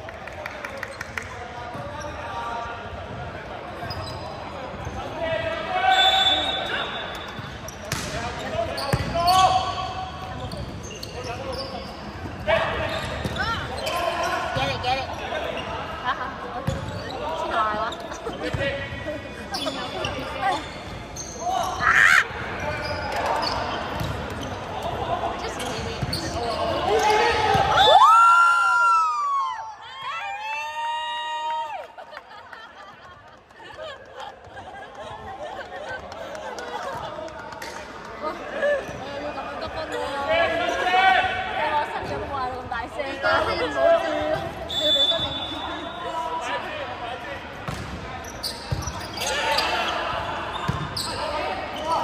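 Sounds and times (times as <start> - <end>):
volleyball smacks: 7.9 - 8.2.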